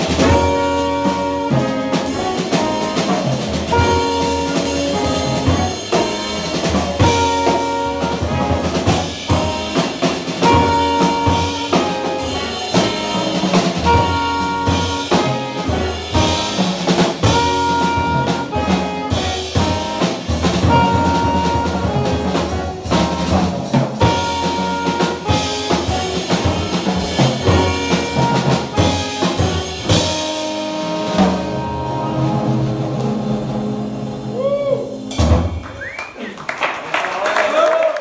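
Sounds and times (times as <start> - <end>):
accented drum hit: 0.0 - 36.0
jazz band playing: 0.0 - 36.7.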